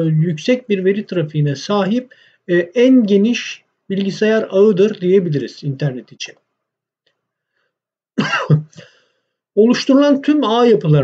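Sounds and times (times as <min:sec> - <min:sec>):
man clearing his throat: 0:08.2 - 0:09.0.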